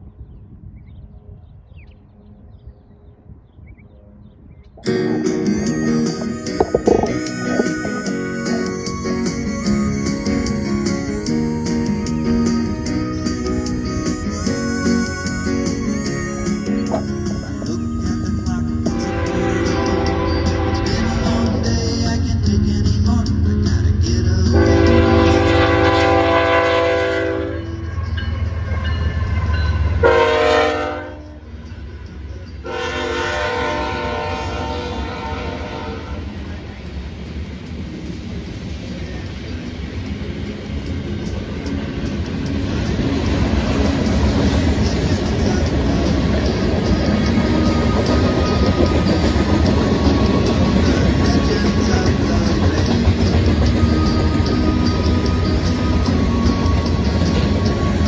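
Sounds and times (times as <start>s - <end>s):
thin high tone: 4.8s - 12.6s
locomotive air horn blasts: 18.9s - 21.6s, 24.5s - 27.8s, 30.0s - 31.4s, 32.6s - 36.3s
freight cars rolling on rails: 31.3s - 58.0s.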